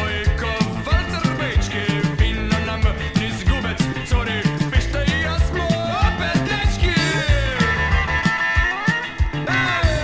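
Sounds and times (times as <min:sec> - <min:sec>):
rock song with singer and band: 0:00.0 - 0:10.0
steady drum beat: 0:00.0 - 0:10.0.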